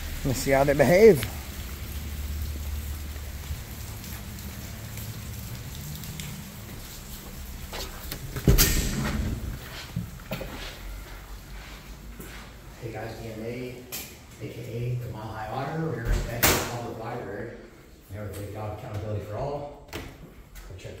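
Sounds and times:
door thumping open: 0:08.2 - 0:09.6.

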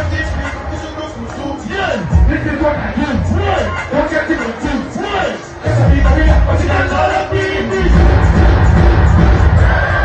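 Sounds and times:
heavy bass beat: 0:00.0 - 0:10.0
live concert music over speakers: 0:00.0 - 0:10.0.

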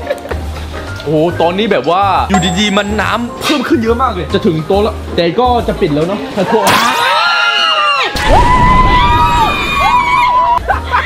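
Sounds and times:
background music: 0:00.0 - 0:06.4.

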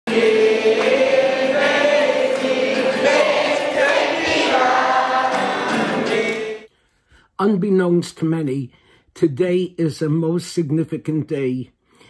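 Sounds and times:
choir singing held notes: 0:00.1 - 0:06.7.

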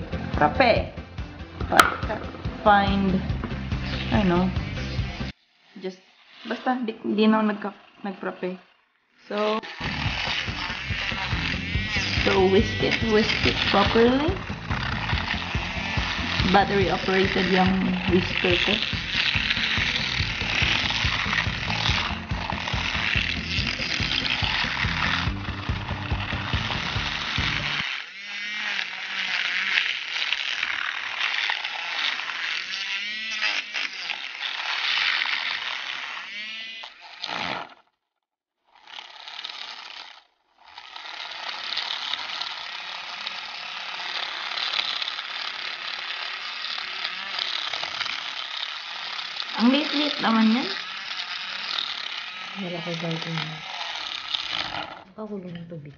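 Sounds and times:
milk frother whirring: 0:00.0 - 0:37.9, 0:38.7 - 0:55.8
low rattle: 0:09.7 - 0:27.9.

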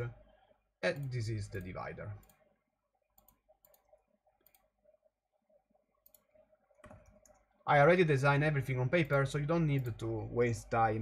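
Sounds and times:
computer mouse clicking: 0:03.2 - 0:04.8, 0:06.0 - 0:07.5, 0:09.0 - 0:10.1.

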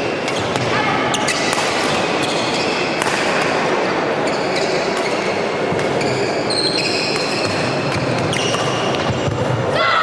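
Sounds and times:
murmur of spectators: 0:00.0 - 0:10.0
rackets striking shuttlecock: 0:01.3 - 0:02.3, 0:03.0 - 0:03.7
falling pitched squeak or call: 0:06.0 - 0:07.5.

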